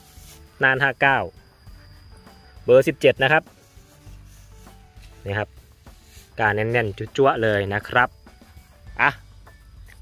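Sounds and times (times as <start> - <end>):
faint background music: 0.0 - 10.0
thin steady high tone: 0.0 - 10.0
man speaking: 0.6 - 1.3, 2.6 - 3.5, 5.2 - 5.5, 6.4 - 8.1.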